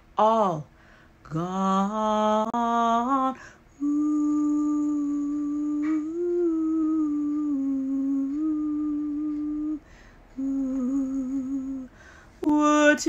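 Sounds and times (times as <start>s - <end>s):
woman humming a slow tune: 1.3s - 13.0s.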